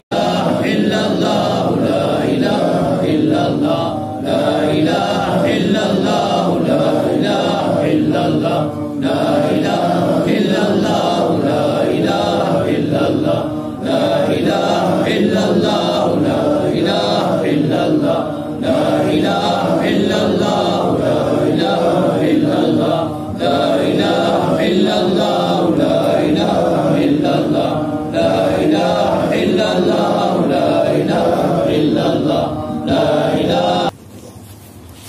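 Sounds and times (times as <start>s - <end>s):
men chanting in unison: 0.0s - 34.0s.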